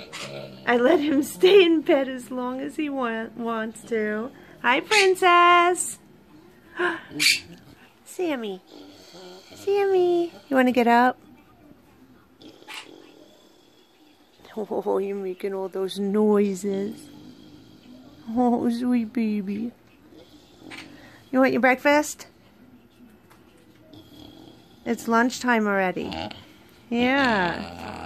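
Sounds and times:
pig snorting: 0.0 - 2.3, 6.8 - 11.0, 12.3 - 14.9, 16.4 - 18.5, 20.0 - 21.6, 23.9 - 28.0.

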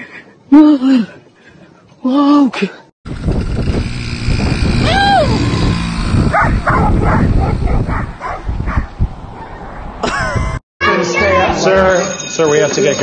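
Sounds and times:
dogs barking and yipping: 6.3 - 10.0.

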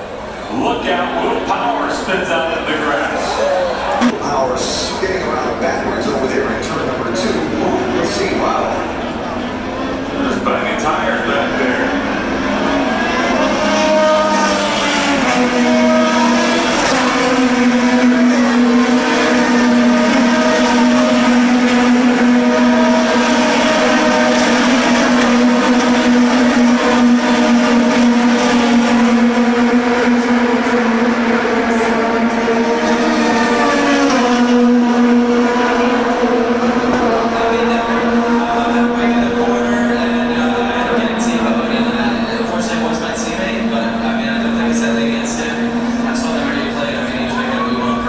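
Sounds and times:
racing cars passing at speed: 0.0 - 48.0.

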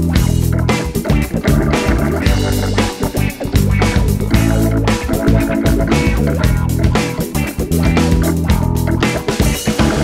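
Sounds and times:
drums: 0.0 - 10.0
electric bass: 0.0 - 10.0
rhythm guitar: 0.0 - 10.0.

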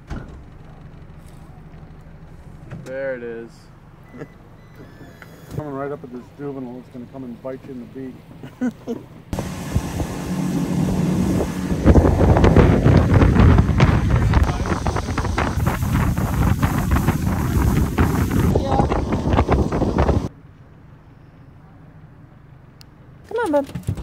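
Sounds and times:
boat motor: 9.2 - 20.3
wind buffeting microphone: 9.3 - 20.3.

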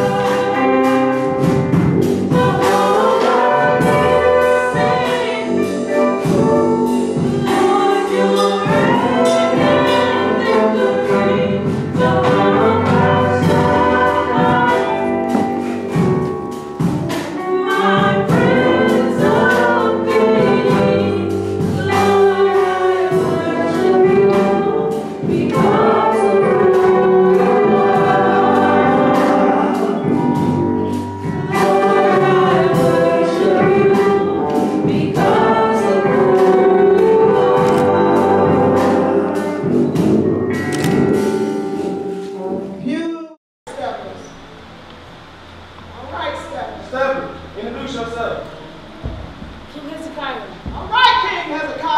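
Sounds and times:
women singing gospel: 0.0 - 40.0
brass section playing: 2.3 - 25.0.

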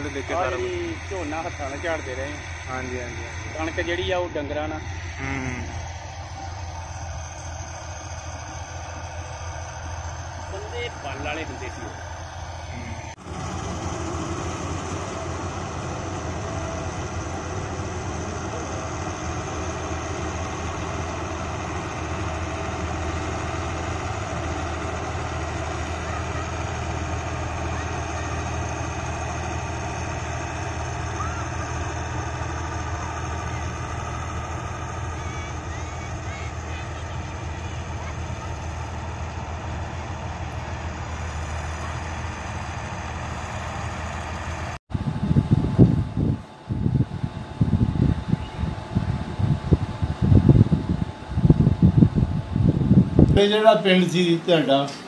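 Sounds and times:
combine harvester engine drone: 0.0 - 55.0.

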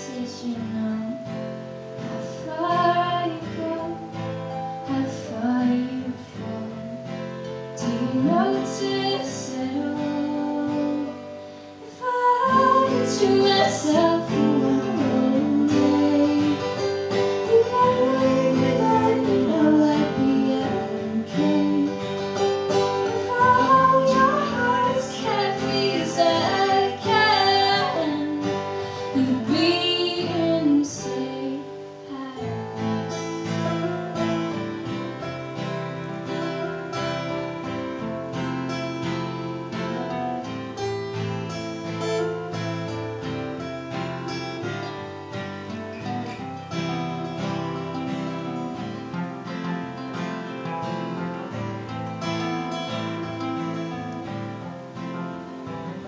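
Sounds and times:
person singing: 0.0 - 35.4
acoustic guitars strumming: 0.0 - 56.0.

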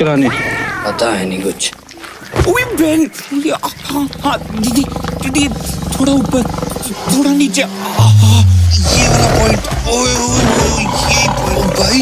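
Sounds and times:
tiger growling: 0.0 - 12.0.

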